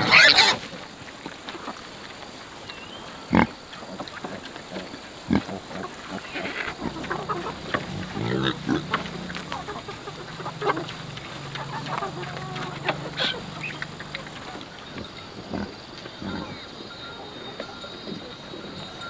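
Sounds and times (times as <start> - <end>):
pigs grunting: 0.0 - 2.0, 3.0 - 19.0
hens clucking: 0.0 - 19.0.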